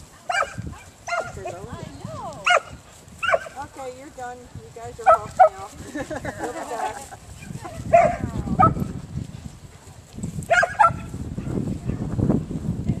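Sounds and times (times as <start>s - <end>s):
dog barking: 0.3s - 1.6s, 2.4s - 3.6s, 5.0s - 5.6s, 7.4s - 8.9s, 10.5s - 12.0s.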